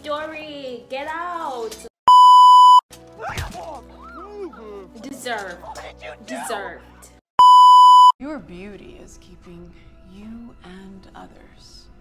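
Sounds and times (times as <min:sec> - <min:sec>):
test-tone beep: 0:02.1 - 0:02.8, 0:07.4 - 0:08.1
film soundtrack music: 0:02.9 - 0:07.2.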